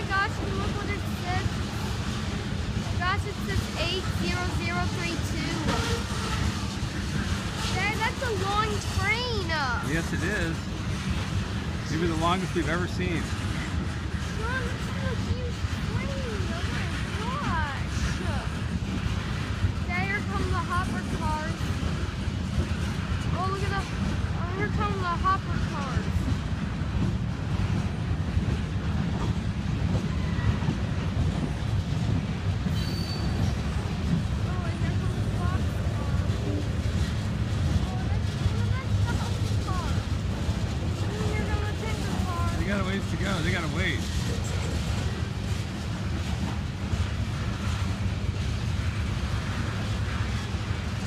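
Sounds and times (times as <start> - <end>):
train wheels rumbling on rail: 0.0 - 51.0.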